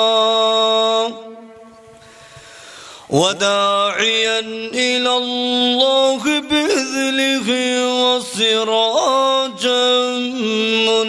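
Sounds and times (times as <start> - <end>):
man chanting through microphone: 0.0 - 1.8, 3.1 - 11.0.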